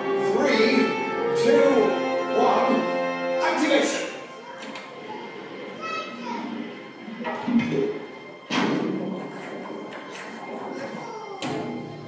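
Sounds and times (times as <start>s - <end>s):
show music: 0.0s - 4.3s.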